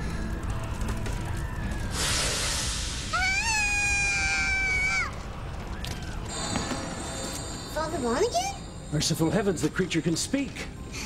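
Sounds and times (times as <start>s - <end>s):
child screaming: 3.1s - 5.2s.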